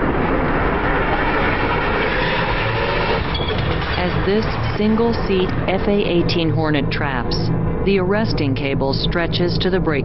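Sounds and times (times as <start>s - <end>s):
jet engines running loud: 0.0s - 10.0s.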